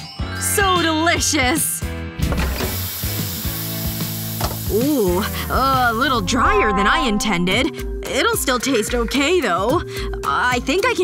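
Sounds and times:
roast chicken sizzling on tray: 2.4 - 6.0.

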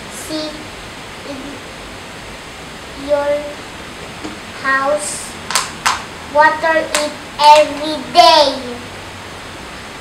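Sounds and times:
background hiss: 0.0 - 10.0
child saying a word: 6.4 - 8.9.

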